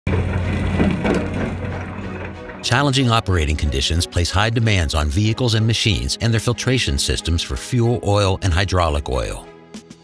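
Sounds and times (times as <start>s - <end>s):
rocks crunching and grinding: 0.1s - 4.0s.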